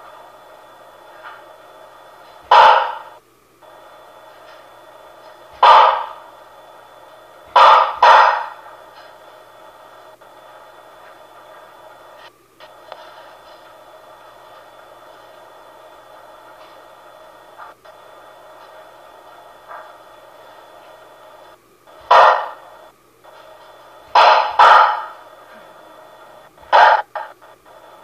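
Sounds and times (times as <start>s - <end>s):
static hiss from speaker: 0.0s - 28.0s
loud bursts of noise: 1.6s - 13.0s, 13.7s - 28.0s.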